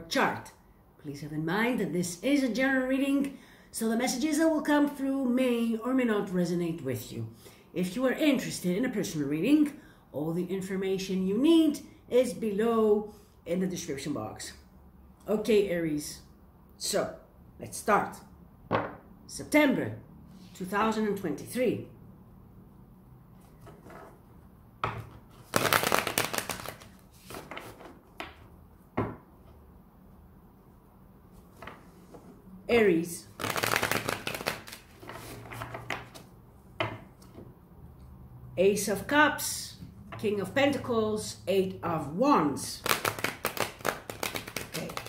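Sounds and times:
cards being shuffled: 25.0s - 28.4s, 33.3s - 36.3s, 42.8s - 45.0s.

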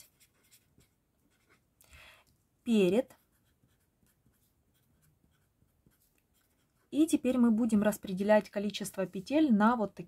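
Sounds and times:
pen scratching on paper: 0.0s - 1.6s, 2.8s - 9.5s.

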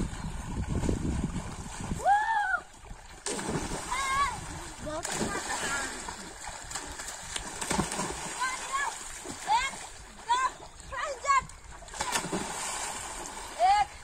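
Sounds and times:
boys splashing in water: 0.5s - 14.0s.

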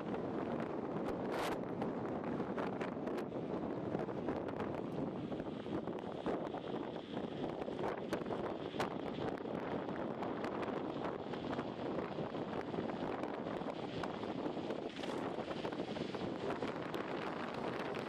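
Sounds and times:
wind rushing over microphone: 0.0s - 18.0s.

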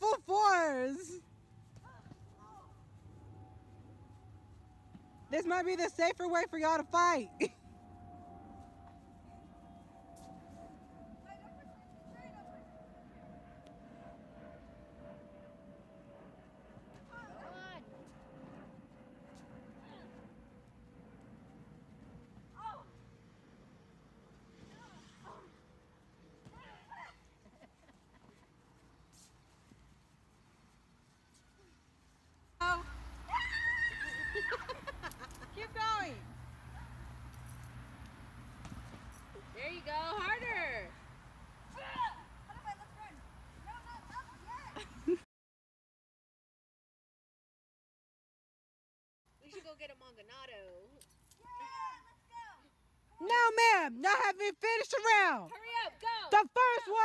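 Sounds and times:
distant shouts and calls: 0.0s - 18.1s, 32.6s - 37.3s, 41.6s - 44.8s.

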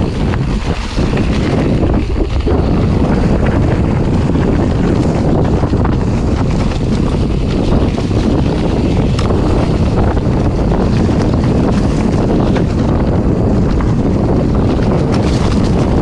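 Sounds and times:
bike tyres rumbling on dirt: 0.0s - 16.0s
wind on microphone: 0.0s - 16.0s.

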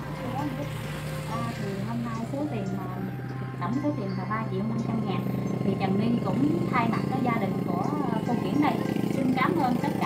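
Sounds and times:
steady low hum: 0.0s - 10.0s
voices talking: 0.0s - 10.0s.

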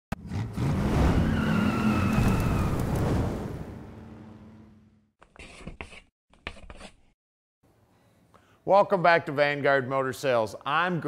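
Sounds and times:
tyre squeal: 1.1s - 2.8s.

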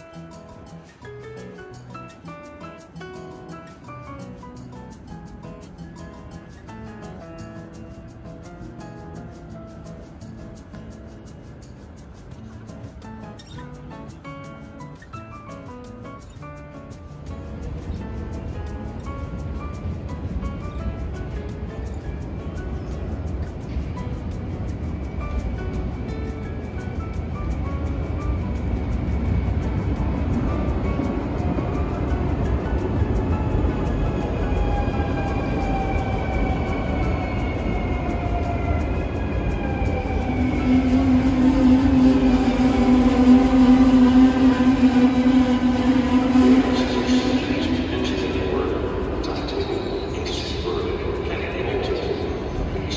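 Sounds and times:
train rumble: 16.6s - 52.9s.

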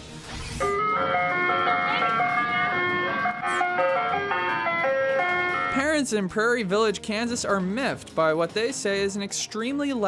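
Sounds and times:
ice cream truck jingle: 0.6s - 6.0s.

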